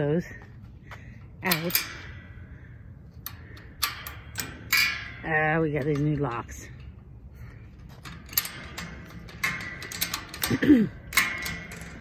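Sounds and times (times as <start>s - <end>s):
sharp metal clicks of padlock: 8.0s - 12.0s.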